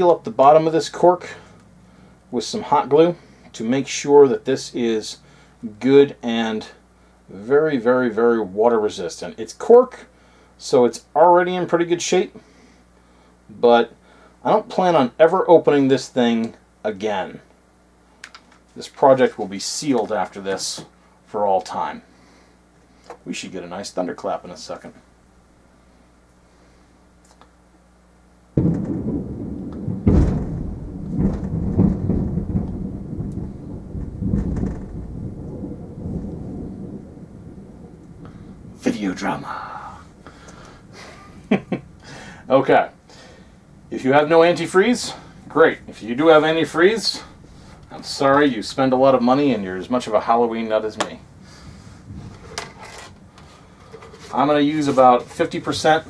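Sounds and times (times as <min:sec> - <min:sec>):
rolling thunder rumbles: 0:28.6 - 0:56.0
thunder crack: 0:28.6 - 0:56.0.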